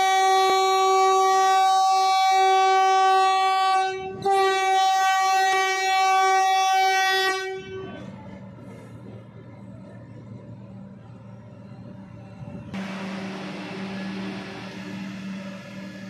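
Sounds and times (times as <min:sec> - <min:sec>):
train horn blasts: 0:00.0 - 0:08.2.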